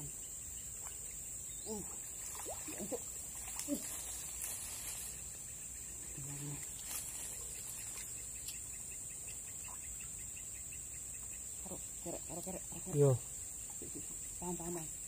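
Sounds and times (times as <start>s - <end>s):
insects high-pitched chorus: 0.0s - 15.0s.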